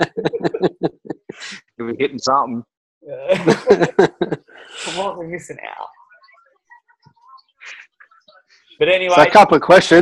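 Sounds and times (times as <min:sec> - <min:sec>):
men laughing: 0:00.0 - 0:01.6, 0:03.1 - 0:05.0
man speaking: 0:00.0 - 0:05.2, 0:08.8 - 0:10.0.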